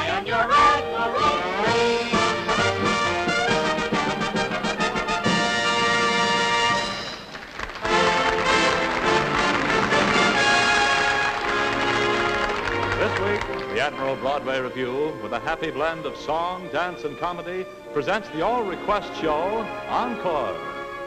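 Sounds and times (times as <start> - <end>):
brass-led orchestra music: 0.0 - 21.0.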